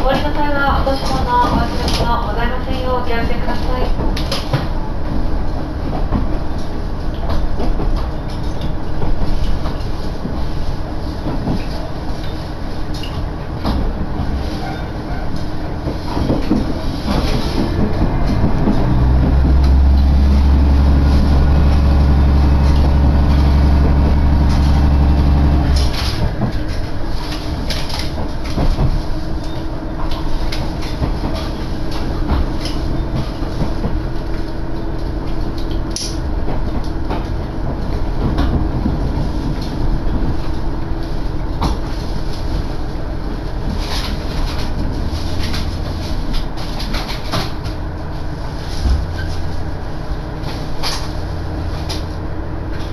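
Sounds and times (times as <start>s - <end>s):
deep diesel engine drone: 0.0s - 52.9s
train interior rumble: 0.0s - 52.9s
wheels clattering over rail joints: 0.0s - 52.9s.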